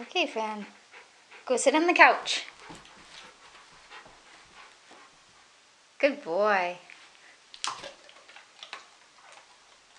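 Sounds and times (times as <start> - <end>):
dog paws tapping on floor: 1.5 - 5.4.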